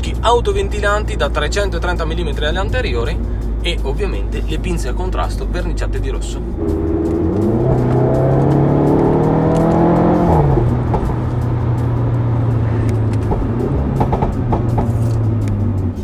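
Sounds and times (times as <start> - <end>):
car engine revving: 3.0 - 16.0.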